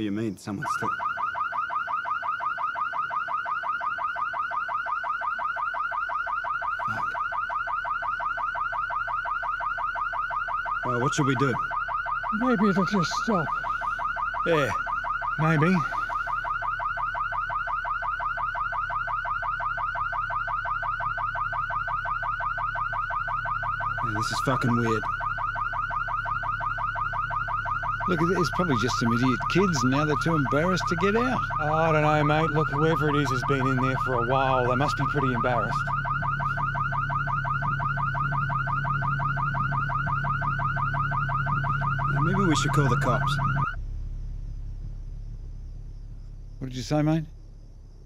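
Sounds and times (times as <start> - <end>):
car alarm sweeping tone: 0.0 - 47.4
low steady hum: 0.0 - 48.0.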